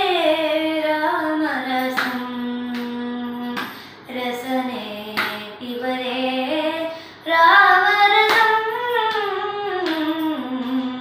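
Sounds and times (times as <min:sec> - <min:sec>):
girl singing devotional song: 0:00.0 - 0:11.0
breath: 0:03.6 - 0:04.1, 0:06.9 - 0:07.2.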